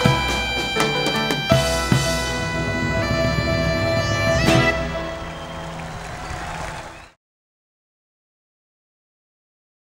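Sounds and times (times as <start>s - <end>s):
band chord ringing with bagpipe: 0.0s - 5.8s
audience applause: 4.6s - 7.2s.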